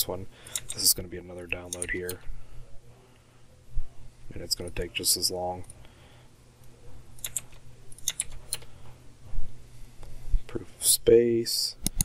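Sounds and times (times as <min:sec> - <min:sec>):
keyboard keystrokes: 0:07.2 - 0:08.7
mouse clicks: 0:07.2 - 0:08.7.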